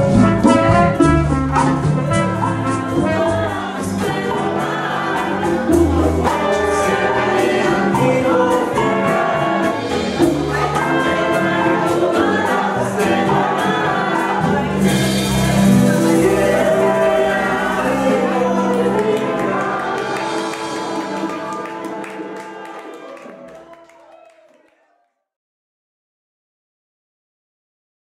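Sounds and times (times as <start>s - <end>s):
salsa band playing: 0.0s - 23.6s
percussion beat: 0.0s - 23.8s
horns: 0.0s - 24.7s
singers singing in chorus: 2.7s - 23.0s.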